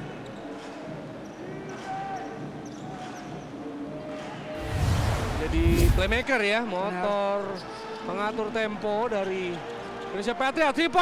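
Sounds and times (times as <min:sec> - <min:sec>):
low whoosh effect: 0:04.6 - 0:06.4.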